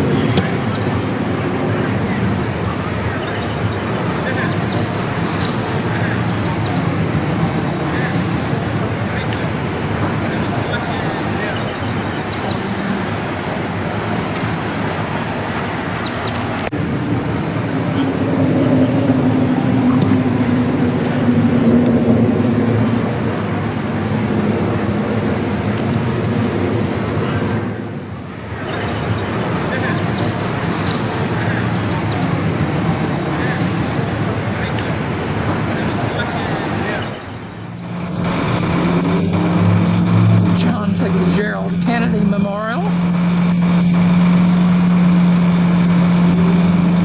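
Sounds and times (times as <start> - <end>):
city street traffic: 0.0 - 47.0
vehicle passing: 0.0 - 47.0.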